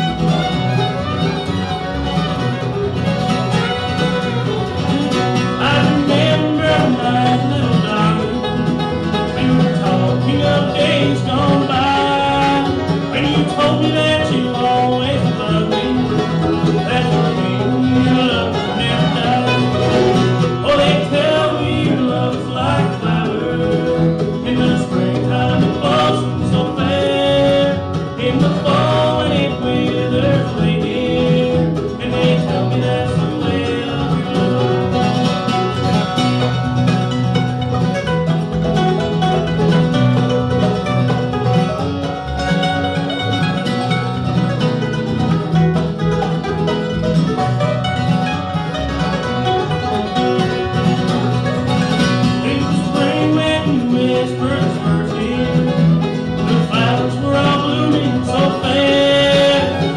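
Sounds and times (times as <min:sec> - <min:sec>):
bluegrass band playing: 0:00.0 - 0:59.9
man singing: 0:05.0 - 0:35.5, 0:52.3 - 0:59.9.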